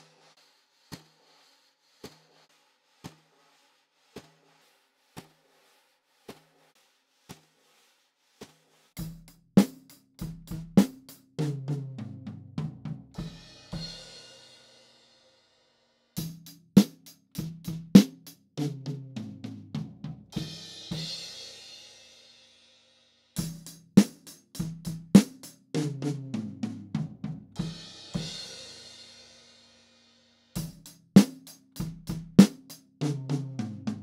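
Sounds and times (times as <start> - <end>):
wire brushes tapping snare drum: 0.0 - 3.5, 23.4 - 28.8, 30.6 - 34.0
drum kit playing: 9.0 - 14.5, 16.2 - 21.9, 23.4 - 29.5, 30.6 - 34.0.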